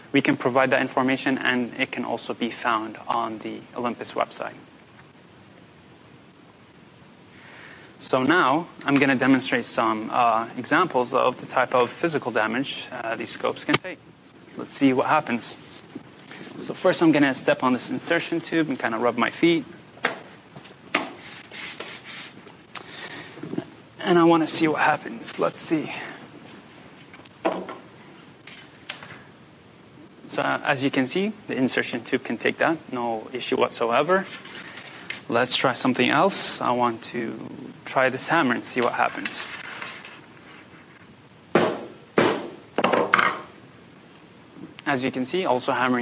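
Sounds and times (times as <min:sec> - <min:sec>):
shoe scuffing and rubbing: 0:20.2 - 0:22.4.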